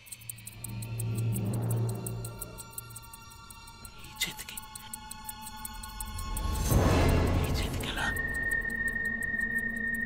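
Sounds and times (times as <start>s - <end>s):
steady high-pitched tone: 0.3s - 4.1s.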